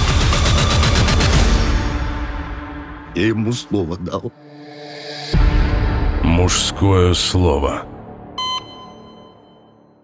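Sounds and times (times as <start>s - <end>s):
film score music: 0.0s - 10.0s
short electronic beep: 8.4s - 10.0s.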